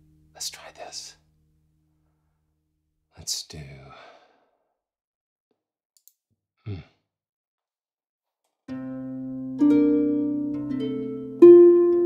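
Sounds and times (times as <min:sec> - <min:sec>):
man sighing: 0:06.6 - 0:07.0
harp chord ringing: 0:08.7 - 0:12.0.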